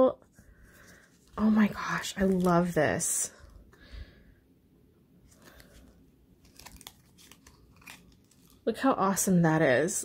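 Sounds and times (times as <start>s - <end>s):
paper rustling: 5.3s - 8.6s.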